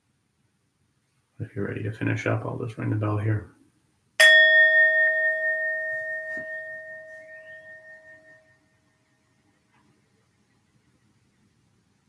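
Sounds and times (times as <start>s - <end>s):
meditation bell ringing: 4.2s - 8.9s.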